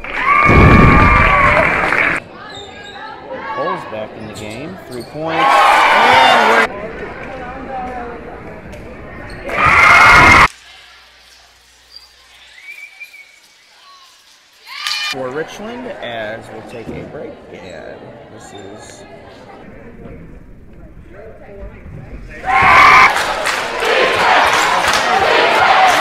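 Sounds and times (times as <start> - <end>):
crowd cheering: 0.0 - 2.2, 5.3 - 6.7, 9.4 - 10.5, 22.4 - 26.0
crowd voices: 1.0 - 11.1, 15.1 - 26.0.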